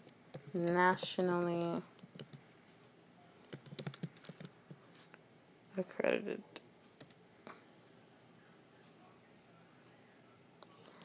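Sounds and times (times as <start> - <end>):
typing on computer keyboard: 0.3 - 2.4, 3.4 - 4.6.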